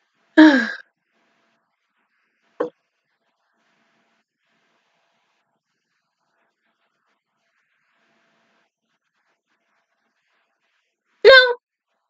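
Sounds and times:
short voiced cry: 11.3s - 11.6s.

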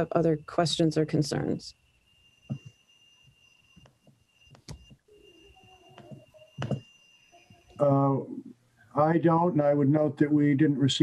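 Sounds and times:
faint high-pitched tone: 0.0s - 11.0s.

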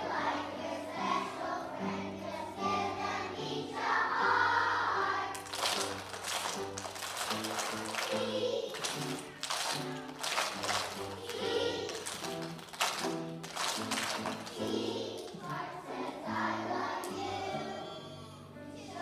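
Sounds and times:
children's choir singing: 0.0s - 9.4s, 10.5s - 13.0s, 13.7s - 19.0s.

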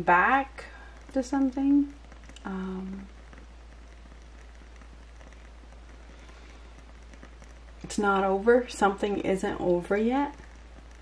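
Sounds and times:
woman speaking: 0.0s - 3.1s, 7.8s - 10.4s
low hum: 0.0s - 11.0s
steady faint hiss: 0.0s - 11.0s.

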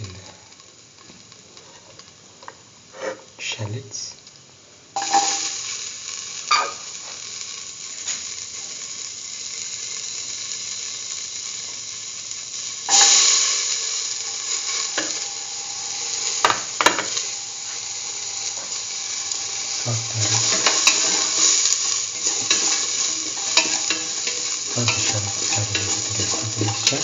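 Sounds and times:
oil sizzling in a pan: 0.0s - 27.0s.

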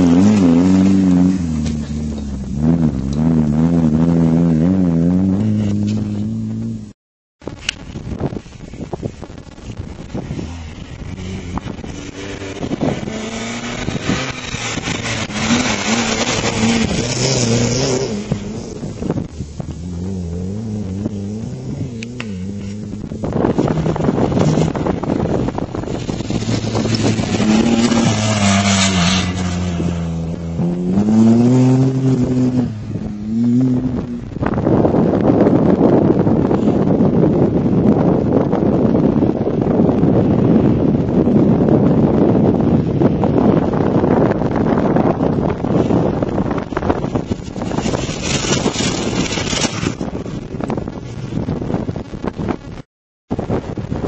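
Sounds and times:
wind buffeting microphone: 0.0s - 54.0s
engines revving hard: 10.3s - 19.0s, 20.0s - 34.3s.

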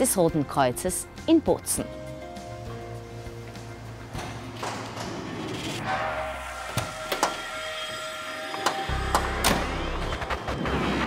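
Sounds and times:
background music with held notes: 0.0s - 5.7s, 6.8s - 11.0s.

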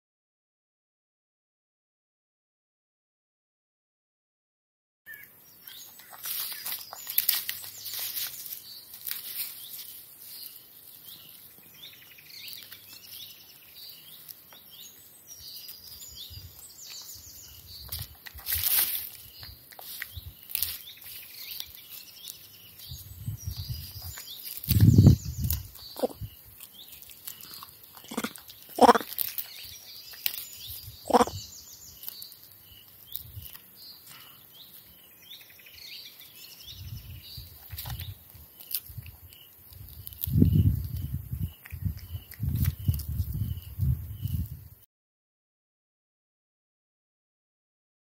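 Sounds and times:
small birds chirping: 5.1s - 44.8s
monkey chewing grass: 5.6s - 35.0s, 37.2s - 44.4s
monkey short calls: 26.0s - 26.2s, 28.0s - 29.1s, 31.0s - 31.4s.

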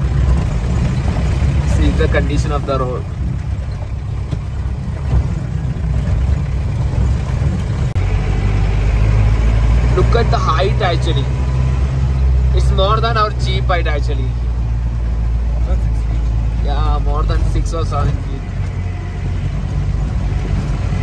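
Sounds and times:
engine droning under load: 0.0s - 21.0s.

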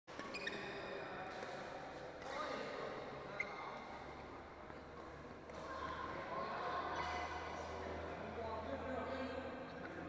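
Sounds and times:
shoes squeaking on floor: 0.1s - 0.9s, 3.3s - 3.9s.

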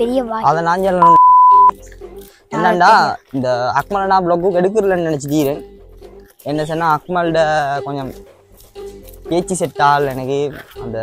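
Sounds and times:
person talking: 0.0s - 1.6s, 2.5s - 5.6s
censor bleep: 1.0s - 1.7s.

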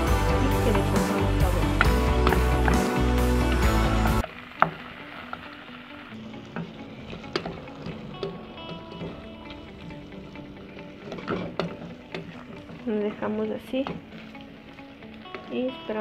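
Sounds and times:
background music: 0.0s - 16.0s
faint sizzling: 0.0s - 16.0s.

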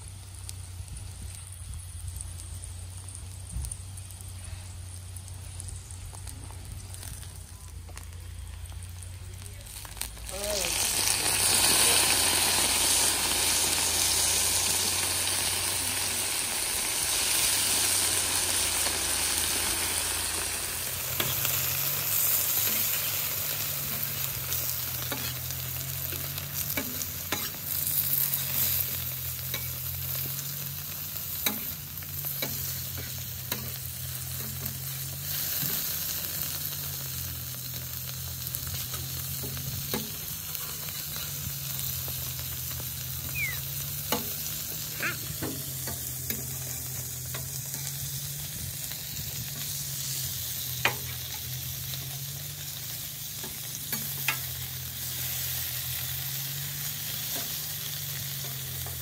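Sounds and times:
tacos sizzling on a griddle: 0.0s - 59.0s
metal spatula scraping griddle: 21.1s - 30.4s.

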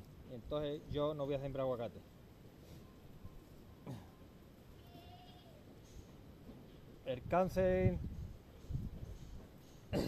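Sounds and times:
goat bleating faintly: 4.8s - 5.7s.

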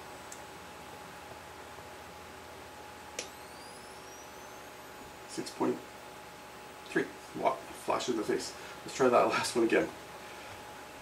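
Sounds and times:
flash recharge whine: 3.0s - 6.8s.

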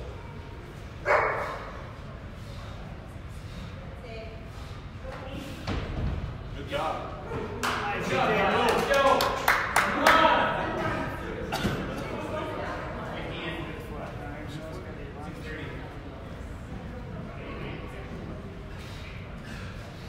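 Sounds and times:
thuds: 5.6s - 6.4s.

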